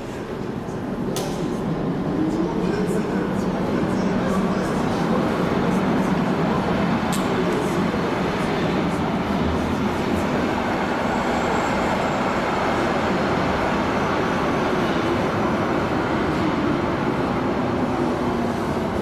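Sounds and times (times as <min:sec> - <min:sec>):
light-rail train rumbling: 0:00.0 - 0:19.0.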